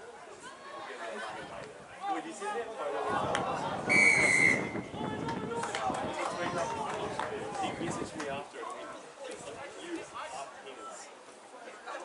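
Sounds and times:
referee's whistle blast: 3.9 - 4.8.

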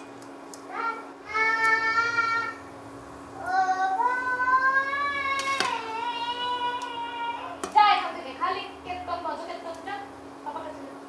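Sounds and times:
low electrical hum: 0.0 - 11.0
child singing long notes: 3.4 - 7.6.

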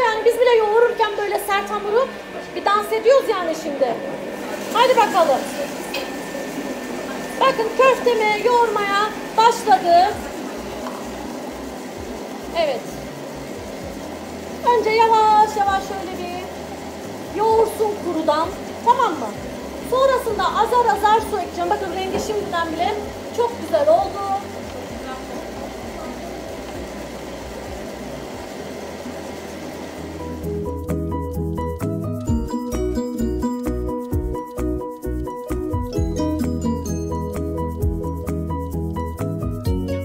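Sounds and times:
dough turning in steel bowl: 0.0 - 30.5
stand mixer motor running: 0.0 - 39.9
background music: 29.8 - 40.0.

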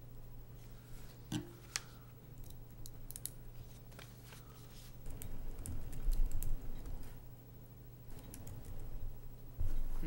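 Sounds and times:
laptop keyboard typing clicks: 5.1 - 7.0, 8.1 - 8.8.

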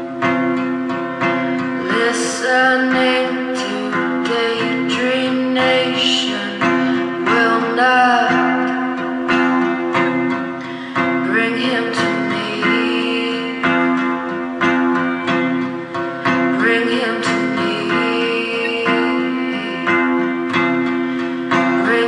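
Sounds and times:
guitar picking: 0.0 - 22.0.

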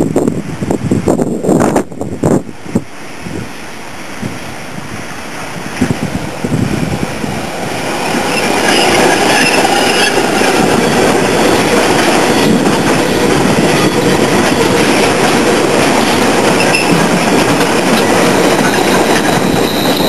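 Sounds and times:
train wheels on rails: 0.0 - 20.0
high wheel squeals: 8.0 - 10.9, 16.6 - 17.1, 18.1 - 20.0.

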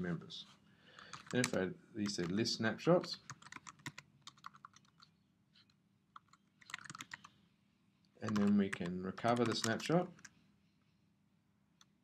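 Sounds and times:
typing on computer keyboard: 1.0 - 2.4, 3.3 - 5.1, 6.1 - 7.3, 8.3 - 10.3.

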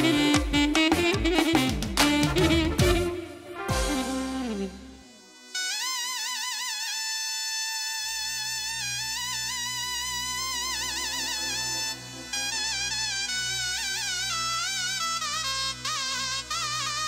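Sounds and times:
low bass line: 0.0 - 5.0
band melody with wide vibrato: 0.0 - 5.1.

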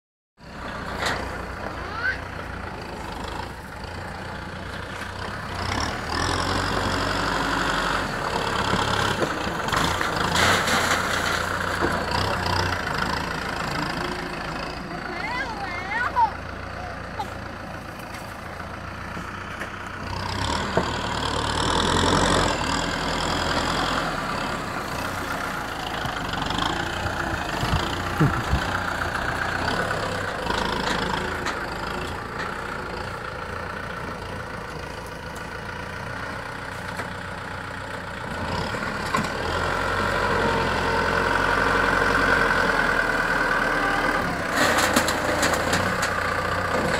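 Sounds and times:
dozer blade pushing soil: 0.4 - 16.2, 17.1 - 46.9
tractor diesel engine running: 0.4 - 46.9.

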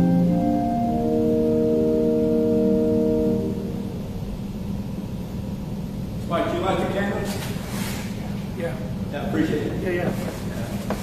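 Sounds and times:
church organ chord: 0.0 - 4.2
low room noise: 0.0 - 11.0.

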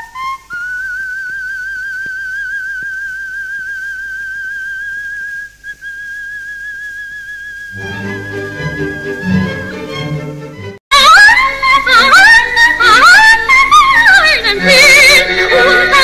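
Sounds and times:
orchestra playing: 7.8 - 10.8.

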